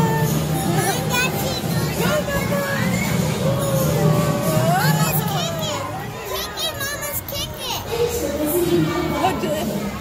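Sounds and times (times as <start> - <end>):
background music: 0.0 - 6.2
children chattering: 0.0 - 10.0.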